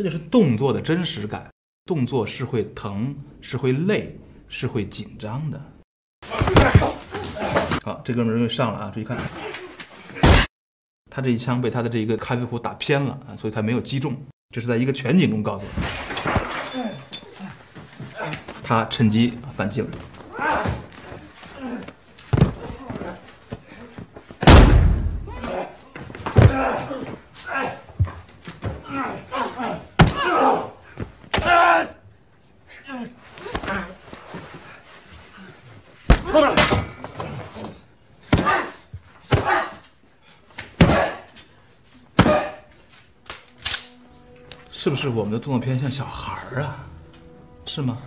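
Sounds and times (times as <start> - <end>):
heavy body impacts: 20.0 - 27.2, 36.0 - 39.8, 40.6 - 41.4, 42.2 - 42.6.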